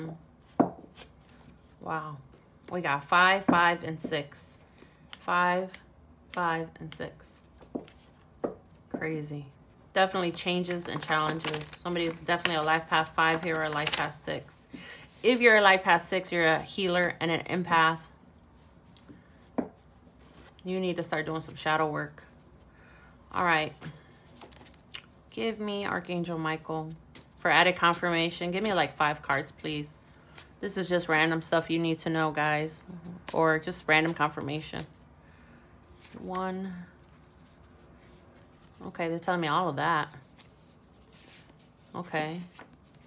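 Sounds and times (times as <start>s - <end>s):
cards rustling and clicking: 10.0s - 14.5s, 23.6s - 25.2s.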